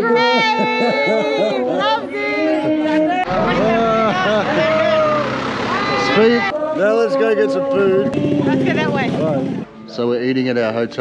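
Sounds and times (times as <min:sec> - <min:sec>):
people calling and singing: 0:00.0 - 0:11.0
truck engine passing: 0:03.2 - 0:09.8.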